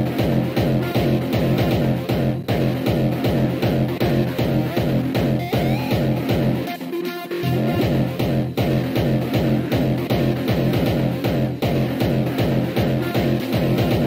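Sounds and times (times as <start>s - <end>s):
pounding kick drum: 0.0s - 6.7s, 7.6s - 14.0s
electronic dance music: 0.0s - 14.0s.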